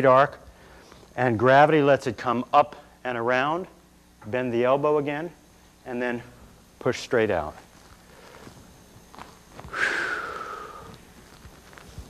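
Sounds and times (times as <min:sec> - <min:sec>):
man breathing out: 0:09.7 - 0:11.0.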